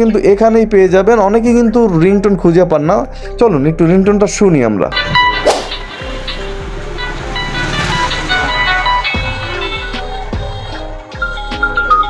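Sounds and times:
phone electronic ringtone melody: 5.0 - 10.3, 11.2 - 12.0.

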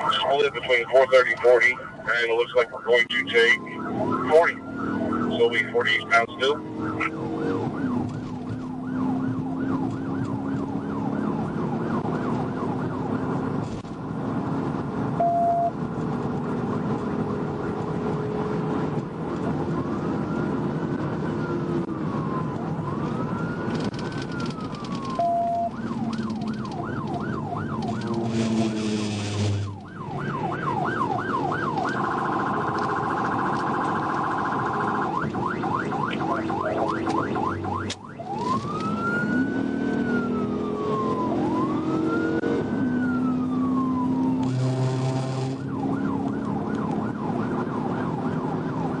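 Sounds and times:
police siren: 0.0 - 13.6, 16.5 - 49.0
engine and road noise: 0.0 - 49.0
short beeps: 15.2 - 15.7.

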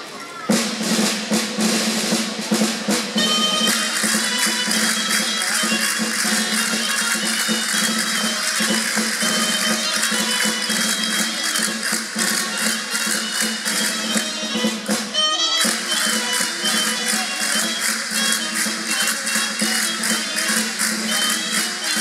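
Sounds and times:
folk band playing: 0.0 - 22.0.

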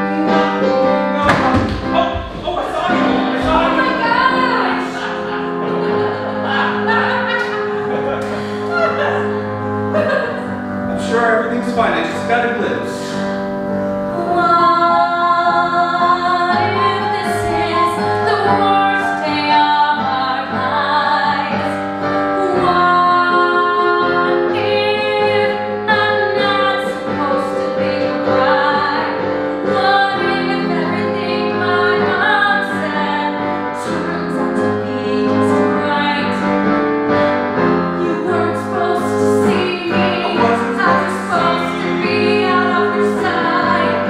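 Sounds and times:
instrumental accompaniment: 0.0 - 44.0
woman singing: 3.4 - 5.3, 14.1 - 36.5, 38.0 - 44.0.

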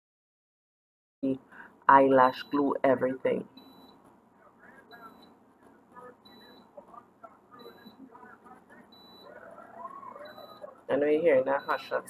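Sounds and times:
faint television voices: 1.2 - 12.0
faint high beep: 4.9 - 5.4, 6.0 - 6.8, 7.5 - 8.2, 8.9 - 12.0.

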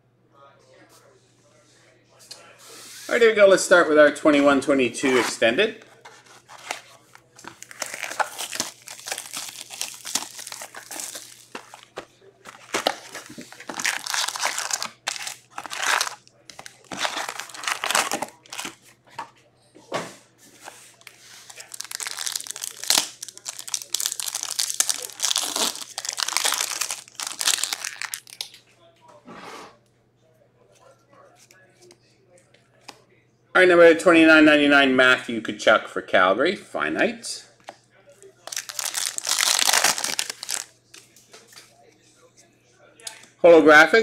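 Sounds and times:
foil wrappers crinkling and tearing: 6.0 - 18.8, 20.6 - 28.5, 38.4 - 40.7.

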